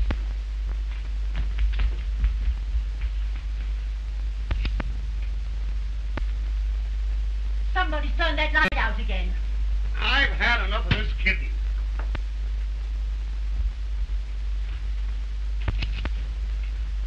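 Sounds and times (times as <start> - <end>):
faint clicks and knocks: 0.0 - 5.4, 14.6 - 16.8
film soundtrack hum and hiss: 0.0 - 17.0.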